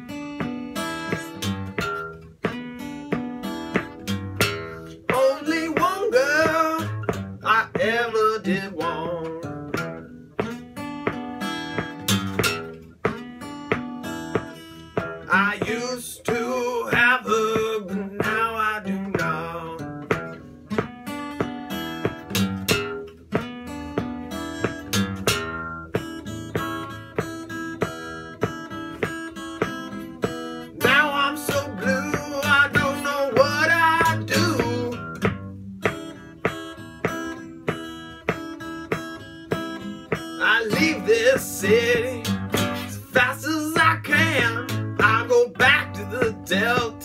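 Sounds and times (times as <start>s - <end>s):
acoustic guitar blues playing: 0.0s - 47.0s.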